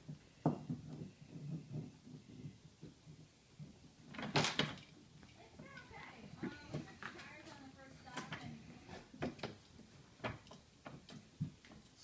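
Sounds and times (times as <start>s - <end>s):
puppies bumping and thudding: 0.0s - 12.0s.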